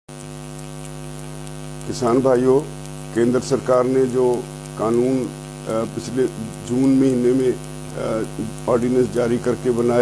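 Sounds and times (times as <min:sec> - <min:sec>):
steady electrical hum: 0:00.1 - 0:10.0.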